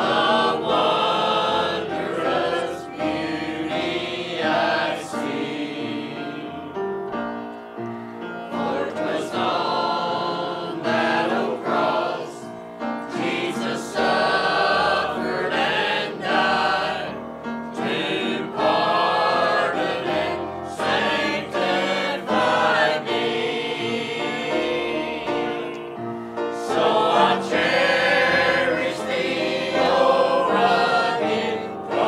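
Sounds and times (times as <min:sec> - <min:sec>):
mixed choir singing a hymn: 0:00.0 - 0:32.0.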